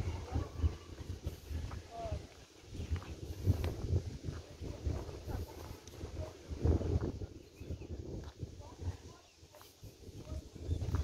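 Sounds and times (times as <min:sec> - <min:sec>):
footsteps on paved path: 0:00.0 - 0:11.0
wind rumbling on microphone: 0:00.0 - 0:11.0.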